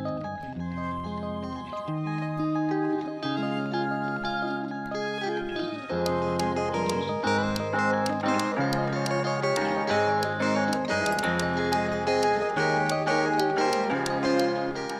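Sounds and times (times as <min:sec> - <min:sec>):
melody over bass notes: 0:00.0 - 0:14.9
light ticking beat: 0:05.2 - 0:14.9.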